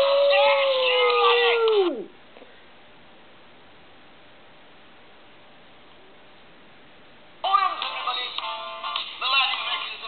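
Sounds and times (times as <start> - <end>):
dog howling: 0.0 - 2.1.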